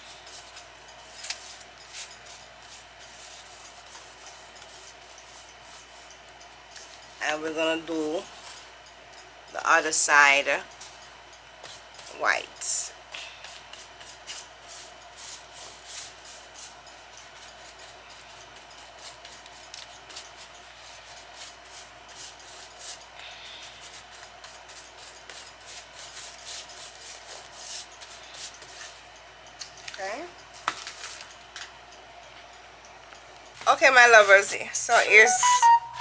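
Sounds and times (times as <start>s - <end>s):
paintbrush scratching on basket: 23.7s - 29.0s.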